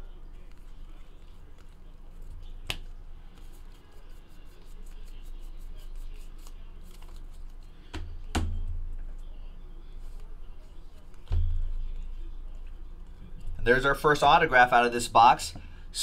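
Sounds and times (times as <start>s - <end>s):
cards flicked through by hand: 2.6s - 3.5s.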